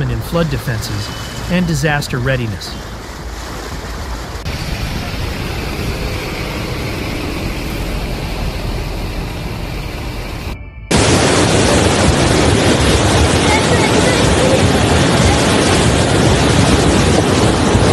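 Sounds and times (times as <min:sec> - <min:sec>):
floodwater rushing: 0:00.0 - 0:17.9
wind noise on microphone: 0:02.8 - 0:17.9.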